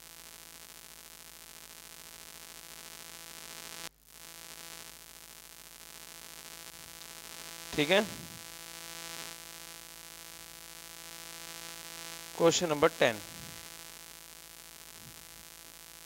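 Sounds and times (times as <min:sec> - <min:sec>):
electrical hum with static hiss: 0:00.0 - 0:16.0.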